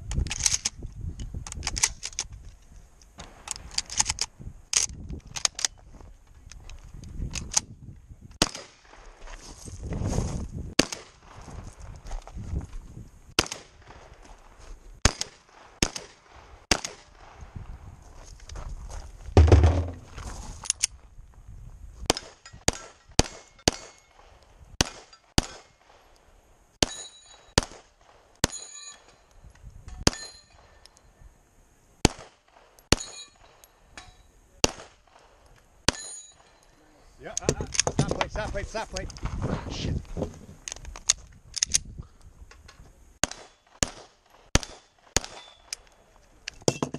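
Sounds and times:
pistol shots: 0:08.4 - 0:09.0, 0:10.8 - 0:11.2, 0:13.4 - 0:14.0, 0:15.0 - 0:17.3, 0:22.1 - 0:26.0, 0:26.8 - 0:28.8, 0:32.0 - 0:33.6, 0:34.6 - 0:36.6, 0:43.2 - 0:45.8
heavy low thump: 0:19.4 - 0:20.2
steel plates ringing: 0:26.8 - 0:27.6, 0:28.5 - 0:29.3, 0:32.9 - 0:34.3, 0:35.9 - 0:36.8.

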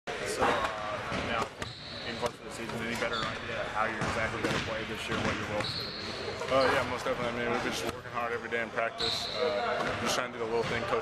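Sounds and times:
basketballs bouncing on gym floor: 0:02.5 - 0:05.8.

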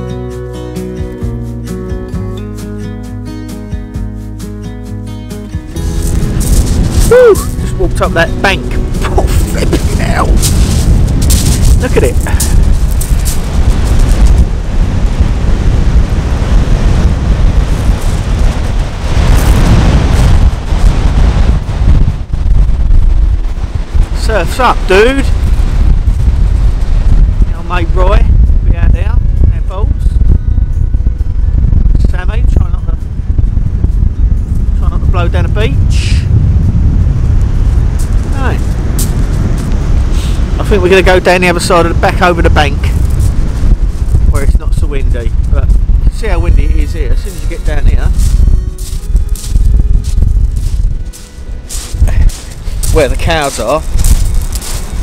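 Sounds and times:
wind buffeting microphone: 0:05.6 - 0:55.0
man's voice: 0:07.1 - 0:10.4, 0:11.8 - 0:12.5, 0:44.3 - 0:48.2, 0:52.0 - 0:54.0.

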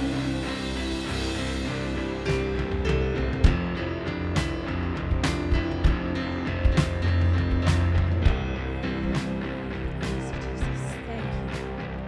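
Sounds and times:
bass guitar notes: 0:00.0 - 0:12.0
drum kit hits: 0:00.0 - 0:12.0
guitar: 0:00.0 - 0:12.0.

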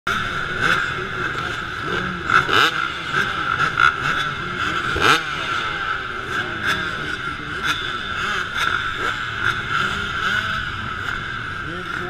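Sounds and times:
dirt bike engines revving: 0:00.1 - 0:12.0.

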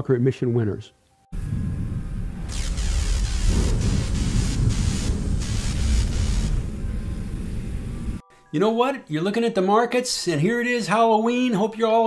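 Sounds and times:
deep thunder-like rumble: 0:01.4 - 0:08.2
rushing hiss: 0:02.5 - 0:08.2.

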